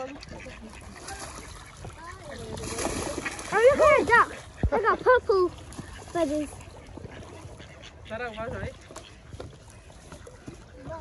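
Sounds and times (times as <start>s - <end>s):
waterfowl honking: 0.0s - 2.5s, 3.2s - 11.0s.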